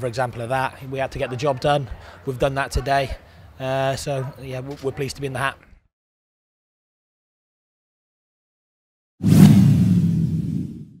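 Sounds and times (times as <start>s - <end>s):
whoosh with deep rumble: 9.2s - 11.0s.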